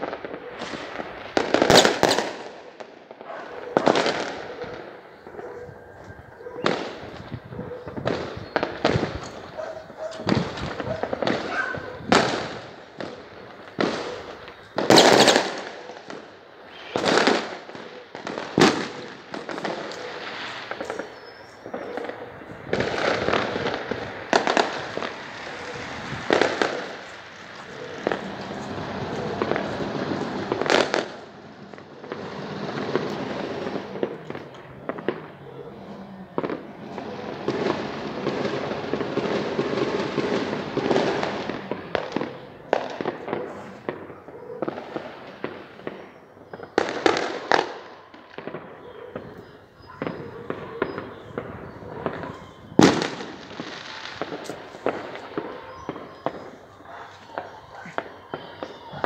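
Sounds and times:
sharp firework bangs: 0:00.0 - 0:05.4, 0:06.6 - 0:59.0
fireworks popping and crackling: 0:00.0 - 0:59.0.

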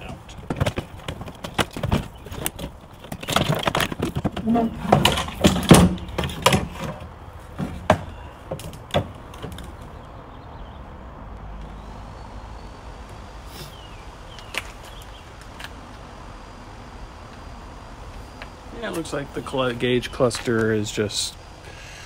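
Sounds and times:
low background noise: 0:00.0 - 0:22.0.

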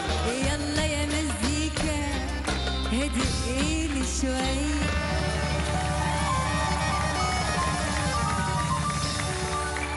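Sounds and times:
band playing pop song: 0:00.0 - 0:09.9
busy percussion rhythm: 0:00.0 - 0:09.9.

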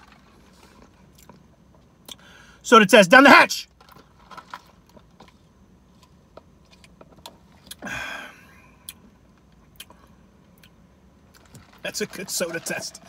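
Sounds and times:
breathy sound: 0:07.8 - 0:08.6.

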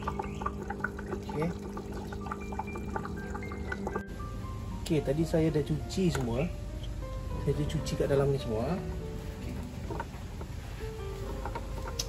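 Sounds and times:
water trickling and dripping: 0:00.0 - 0:04.1
low electric hum: 0:00.0 - 0:12.0.

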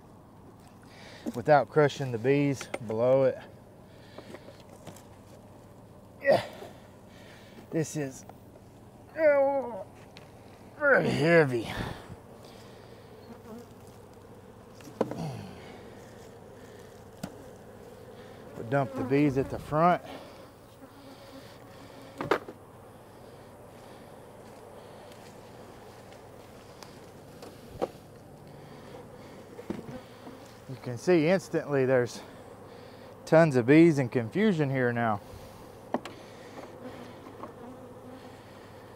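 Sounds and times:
bees buzzing: 0:02.2 - 0:38.9
faint knocks on hive equipment: 0:35.9 - 0:37.6.

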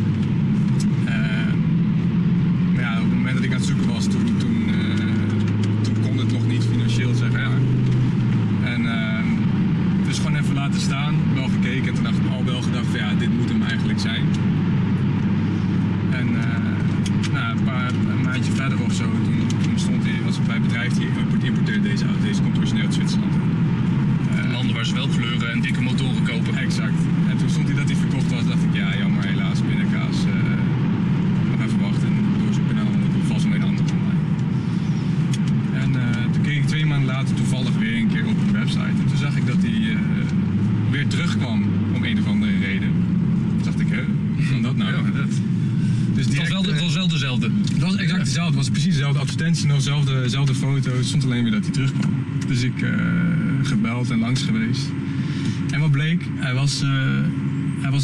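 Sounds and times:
in-cabin road and engine drone: 0:00.0 - 0:58.0.

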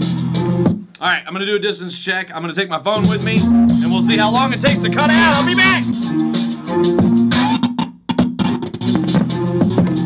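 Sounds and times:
guitar and bass music: 0:00.0 - 0:00.9, 0:02.9 - 0:10.0.

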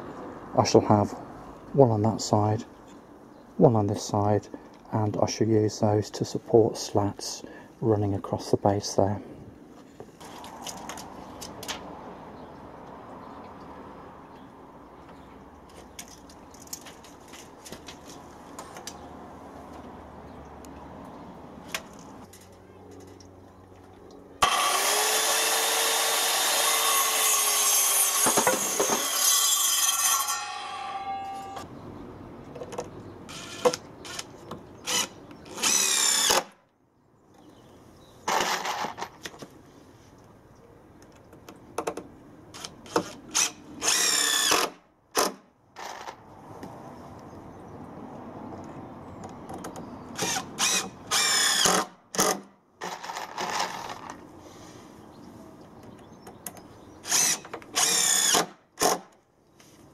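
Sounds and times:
drill driving screws into timber: 0:24.4 - 0:31.0, 0:33.3 - 0:36.6, 0:38.3 - 0:39.1, 0:42.6 - 0:46.2, 0:50.2 - 0:54.2, 0:57.0 - 0:59.2
circular saw cutting timber: 0:24.4 - 0:31.6, 0:33.3 - 0:36.5, 0:42.6 - 0:46.2, 0:50.2 - 0:54.2, 0:57.0 - 0:59.0.

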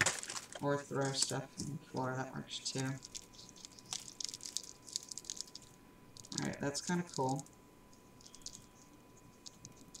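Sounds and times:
paper crinkling and rustling: 0:00.0 - 0:01.4, 0:02.8 - 0:05.7.

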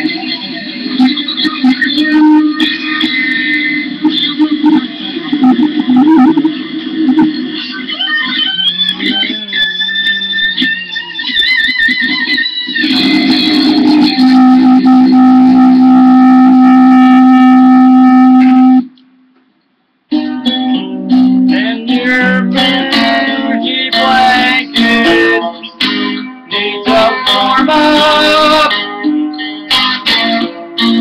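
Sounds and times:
electric guitar playing: 0:00.0 - 0:19.0, 0:20.1 - 0:31.0.

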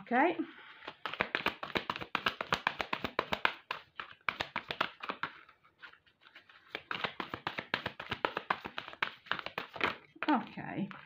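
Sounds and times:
cards being shuffled: 0:00.7 - 0:11.0.

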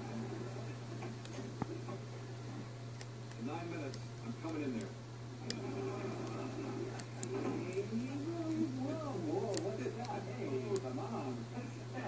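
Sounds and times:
steady low hum: 0:00.0 - 0:12.0
quiet background speech: 0:03.3 - 0:12.0.

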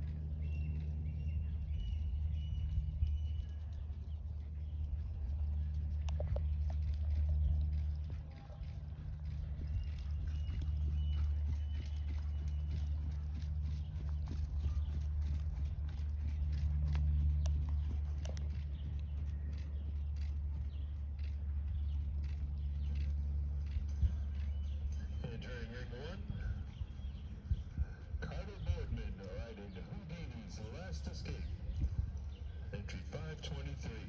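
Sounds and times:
horse hooves trotting on sand: 0:00.0 - 0:30.4
steady low rumble: 0:00.0 - 0:34.0.

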